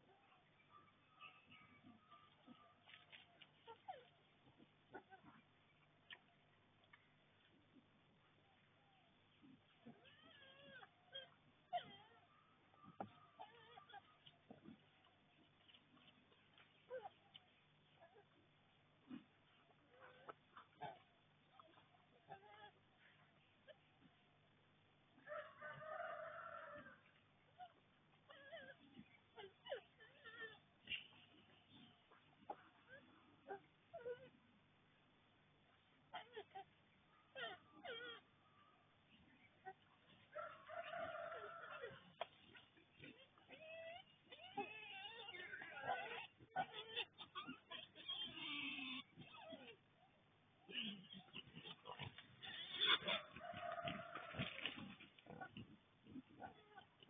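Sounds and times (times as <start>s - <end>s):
wild boar squeaks and ticks: 0.0s - 7.8s, 8.6s - 24.5s, 25.7s - 34.4s, 36.0s - 38.5s, 39.1s - 57.0s
wild boar rooting in leaves: 2.3s - 4.9s, 51.5s - 57.0s
rooster crowing: 25.3s - 27.0s, 40.4s - 42.0s, 53.1s - 54.7s.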